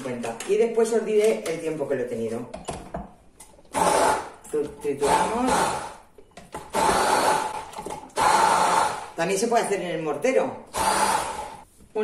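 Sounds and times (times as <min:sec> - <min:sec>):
immersion blender whining: 0:03.7 - 0:04.4, 0:05.0 - 0:09.2, 0:10.7 - 0:11.6.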